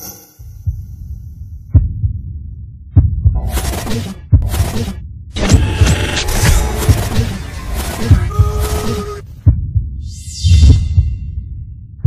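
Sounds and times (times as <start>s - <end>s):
deep heartbeat-like thumps: 0.4s - 12.0s
low throbbing rumble: 9.3s - 12.0s.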